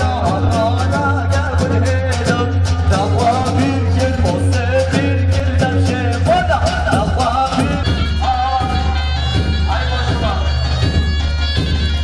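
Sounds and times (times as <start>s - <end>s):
fast drum beat: 0.0s - 12.0s.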